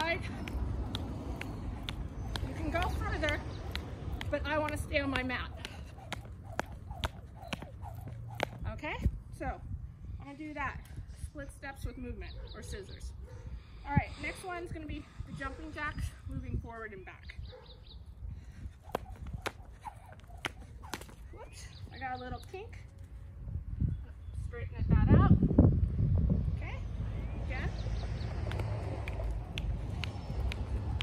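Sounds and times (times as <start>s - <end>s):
jump rope slapping the ground: 0.0s - 8.6s, 18.8s - 21.3s.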